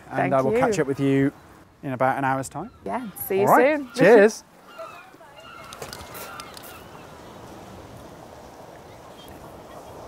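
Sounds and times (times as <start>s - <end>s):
faint distant voices: 2.6s - 10.0s.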